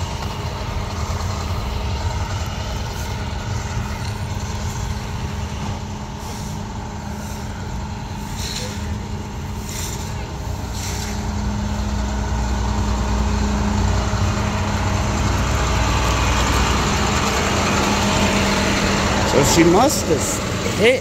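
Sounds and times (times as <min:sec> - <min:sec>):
truck engine idling: 0:00.0 - 0:21.0.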